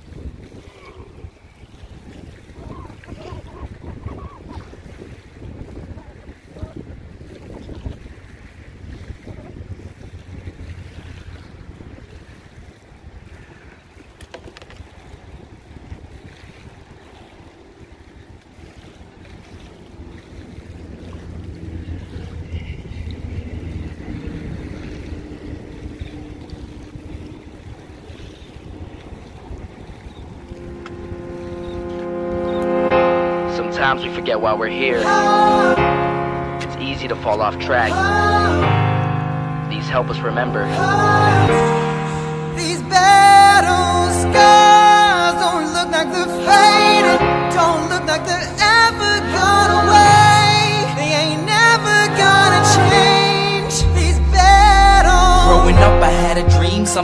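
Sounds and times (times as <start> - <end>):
wind buffeting microphone: 0.0 - 33.0
music: 30.5 - 57.0.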